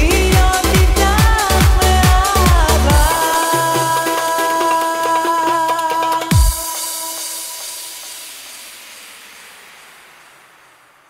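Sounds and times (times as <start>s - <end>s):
electronic hissing noise: 6.5s - 11.0s.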